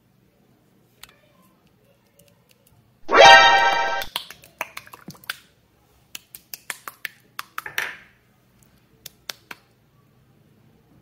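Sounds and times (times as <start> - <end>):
rising pitched tone effect: 3.1 - 4.1.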